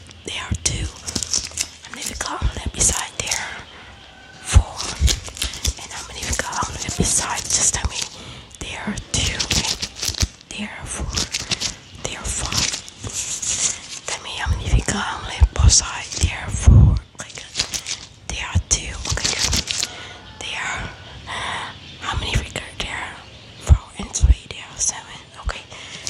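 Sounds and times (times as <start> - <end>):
woman whispering: 0.2 - 26.0.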